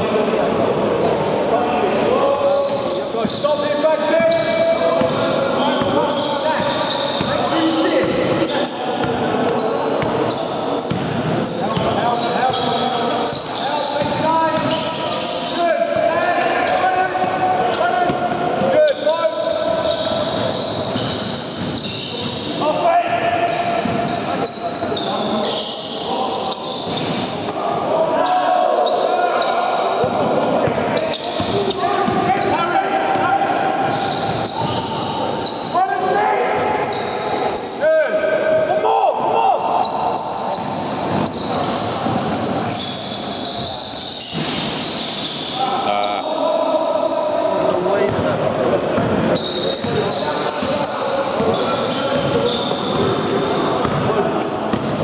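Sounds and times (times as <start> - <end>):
sneakers squeaking: 1.0 - 37.8, 39.6 - 55.0.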